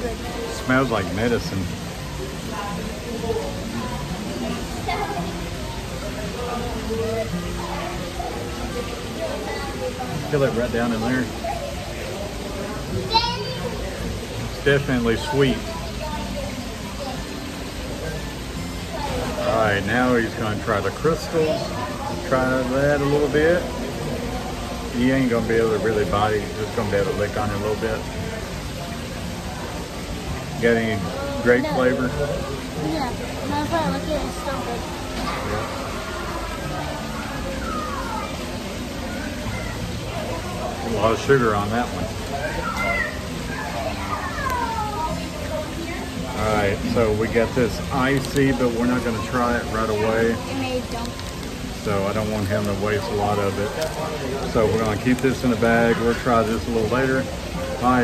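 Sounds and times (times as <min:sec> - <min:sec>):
background music with held notes: 0:00.0 - 0:58.0
indistinct chatter: 0:00.0 - 0:58.0.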